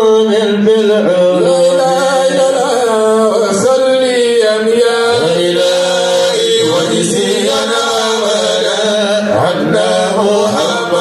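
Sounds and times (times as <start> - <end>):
man chanting over loudspeaker: 0.0 - 11.0.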